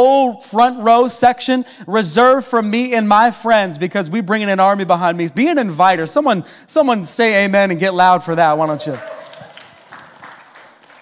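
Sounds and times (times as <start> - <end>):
congregation applauding: 8.6 - 11.0.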